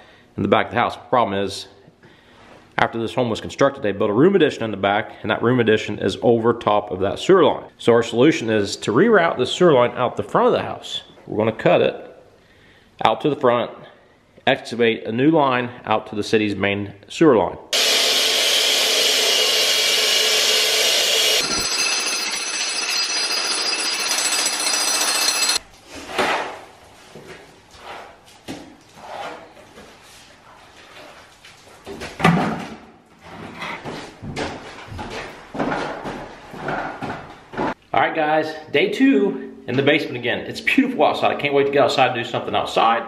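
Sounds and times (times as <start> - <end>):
power saw cutting concrete: 17.8 - 25.6.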